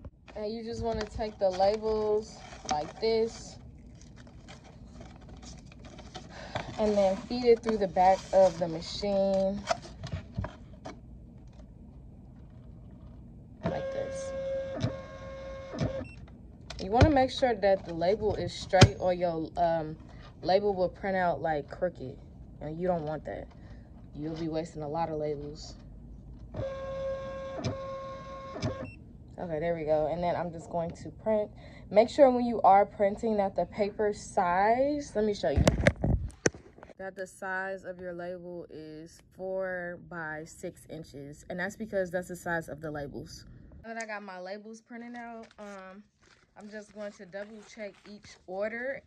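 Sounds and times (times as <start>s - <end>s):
paper labels rustling: 0.3s - 11.7s, 45.1s - 49.0s
printer feed motor whine: 13.6s - 16.2s, 26.5s - 28.9s.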